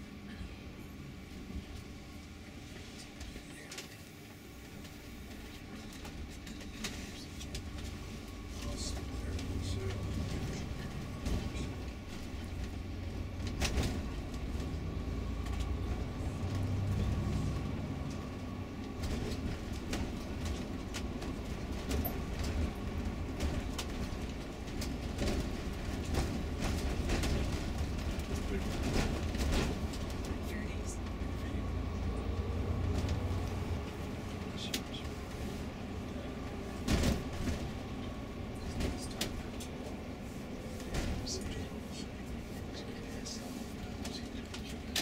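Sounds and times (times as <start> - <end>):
engine and road rumble: 0.0 - 45.0.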